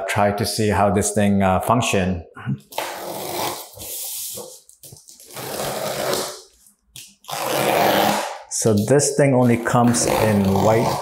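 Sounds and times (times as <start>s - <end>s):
utility knife cutting packing tape: 5.0s - 11.0s.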